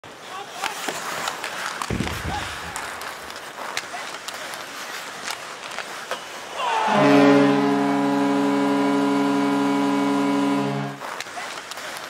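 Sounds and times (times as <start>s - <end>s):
skates on ice: 0.0s - 6.9s, 11.0s - 12.0s
hockey sticks clacking on puck: 0.5s - 6.3s, 11.0s - 12.0s
crowd din: 1.9s - 4.6s.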